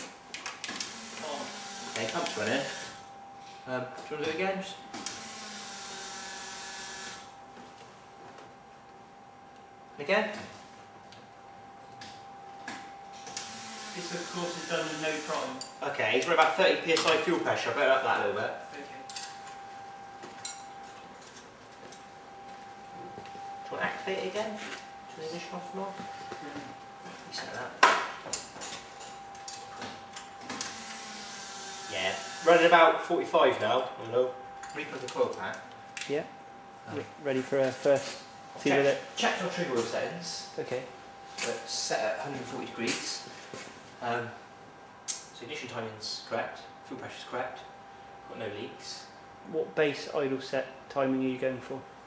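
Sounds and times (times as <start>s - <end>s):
electric fuel pump running: 0.6s - 3.1s, 5.0s - 7.3s, 13.2s - 15.6s, 30.4s - 32.8s.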